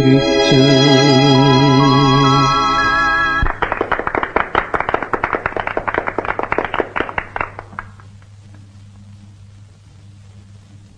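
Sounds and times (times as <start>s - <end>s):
audience applauding: 3.4s - 8.3s.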